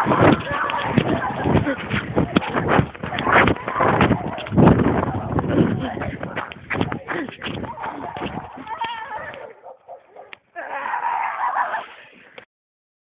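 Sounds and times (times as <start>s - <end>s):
young voices crying out: 0.0s - 2.4s, 7.2s - 9.6s, 10.5s - 12.0s.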